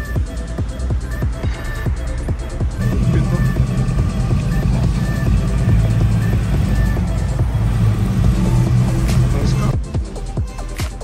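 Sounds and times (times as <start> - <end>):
background music: 0.0 - 11.0
truck engine rumbling past: 2.7 - 9.8.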